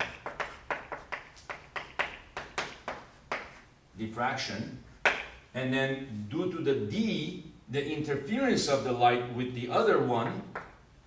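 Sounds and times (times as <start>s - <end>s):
chalk tapping on blackboard: 0.0s - 3.6s, 5.0s - 5.4s.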